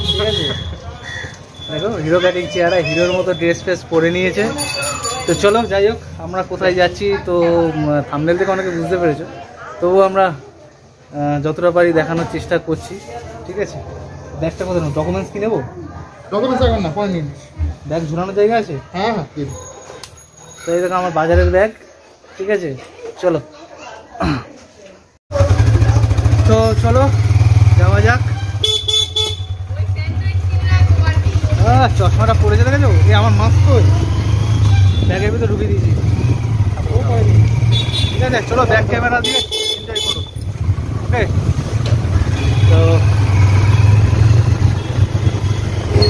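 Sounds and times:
vehicle horn honk: 0:00.0 - 0:00.8, 0:28.2 - 0:29.7, 0:37.7 - 0:38.3, 0:39.2 - 0:40.5, 0:42.3 - 0:43.0
motorcycle engine rumble: 0:25.3 - 0:46.0.

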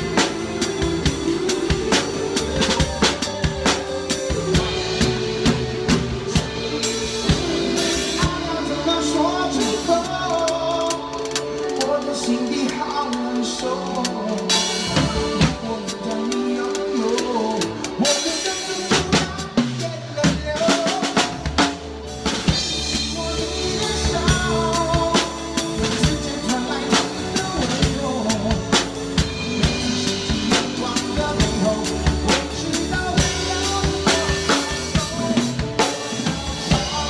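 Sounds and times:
drum kit groove: 0:00.0 - 0:37.0
pop backing track: 0:00.0 - 0:37.0.

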